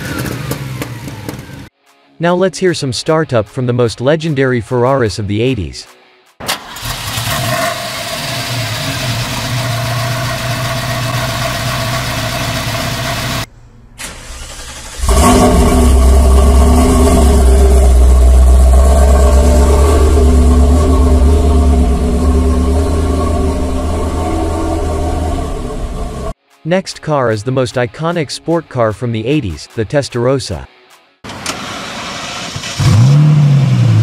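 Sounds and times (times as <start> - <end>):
car engine running: 6.6 - 13.5, 15.0 - 26.4
car engine deep rumble: 6.8 - 13.9, 15.0 - 26.4.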